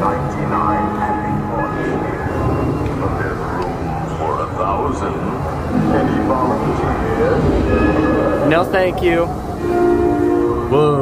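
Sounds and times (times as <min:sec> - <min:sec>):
faint eerie music: 0:00.0 - 0:11.0
ride vehicle rumbling on track: 0:00.0 - 0:11.0.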